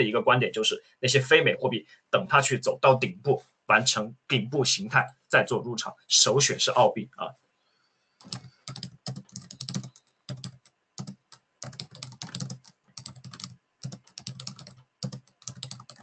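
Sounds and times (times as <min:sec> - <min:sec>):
computer keyboard typing: 0:08.2 - 0:16.0.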